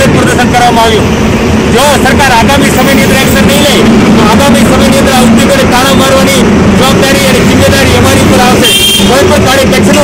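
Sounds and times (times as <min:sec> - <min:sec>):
man speaking: 0:00.0 - 0:01.1, 0:01.7 - 0:10.0
loud steady background noise: 0:00.0 - 0:10.0.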